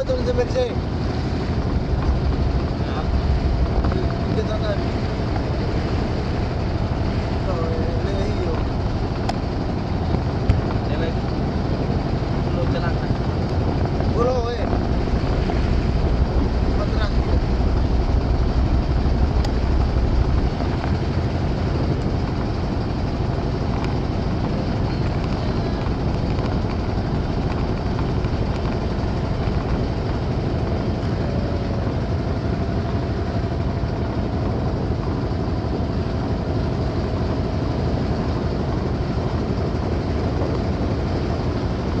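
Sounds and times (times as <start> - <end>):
boat engine drone: 0.0 - 42.0.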